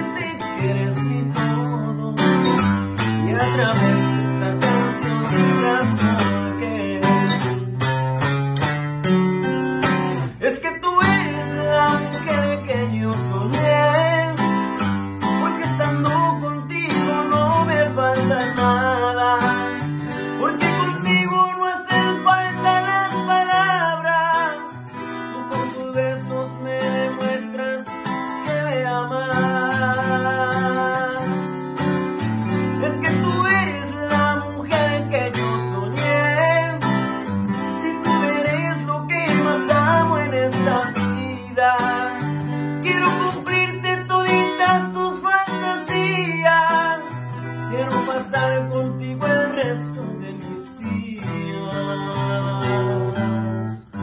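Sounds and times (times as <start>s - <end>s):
man singing a ballad: 0.0s - 8.0s, 10.2s - 54.0s
acoustic guitar strumming chords: 0.0s - 54.0s.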